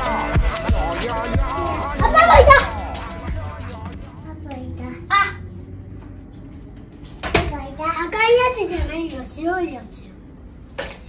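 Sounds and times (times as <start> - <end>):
background music with steady beat: 0.0 - 4.8
child shouting excitedly: 1.9 - 2.9.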